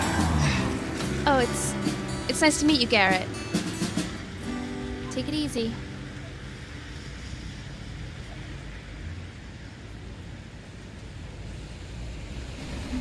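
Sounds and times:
cars passing on wet street: 0.0 - 13.0.

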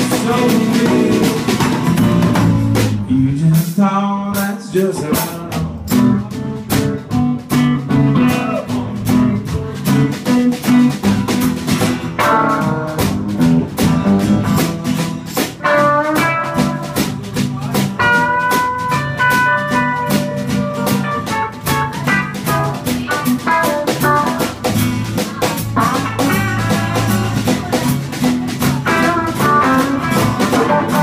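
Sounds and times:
blues band playing: 0.0 - 31.0
electric guitar lead lines: 5.7 - 31.0.

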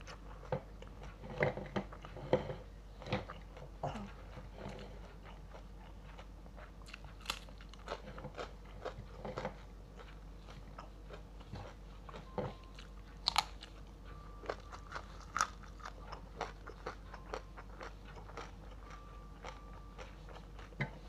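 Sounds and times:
chewing and crunching food: 0.0 - 21.0.

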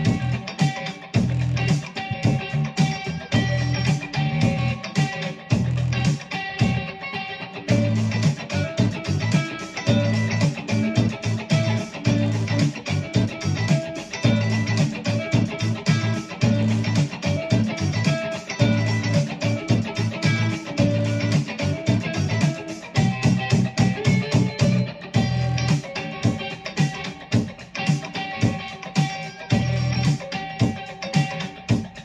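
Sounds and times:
backing track with beat and bass: 0.0 - 32.0
electric guitar lead line: 0.0 - 32.0.

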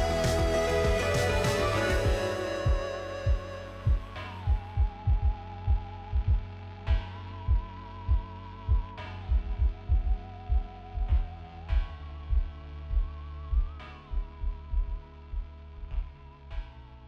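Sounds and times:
held wavering tone: 0.0 - 5.6
deep bass drum pulses: 0.0 - 16.8.

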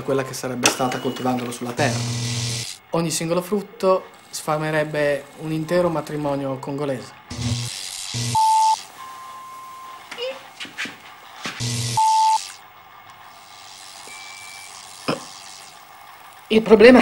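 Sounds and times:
low buzz: 0.8 - 3.4, 7.2 - 10.1, 11.6 - 16.6
static hiss bursts: 1.8 - 2.8, 7.3 - 10.0, 11.6 - 12.7, 13.3 - 16.5
electronic beep: 8.2 - 10.0, 11.8 - 12.6, 14.1 - 14.8.

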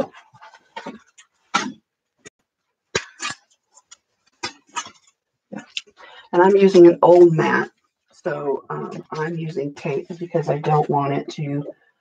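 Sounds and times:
plastic sheets rustling and tapping: 0.0 - 5.3, 6.5 - 11.6.

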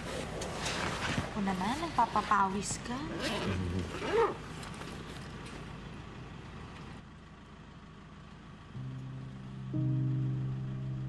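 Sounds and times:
vehicle interior rumble: 0.0 - 11.0
low sustained music notes: 8.7 - 11.0.

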